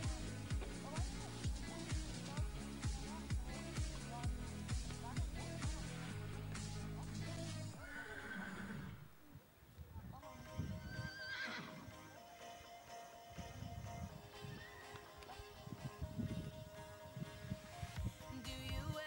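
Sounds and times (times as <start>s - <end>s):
pop music with steady beat: 0.0s - 7.8s, 15.0s - 19.0s
horse whinnying: 7.8s - 9.1s, 10.6s - 11.9s, 14.5s - 15.0s.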